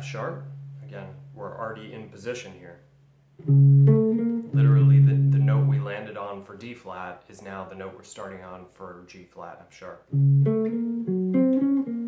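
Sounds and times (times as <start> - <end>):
electric guitar notes ringing: 0.0 - 1.3, 3.4 - 6.0, 10.1 - 12.0.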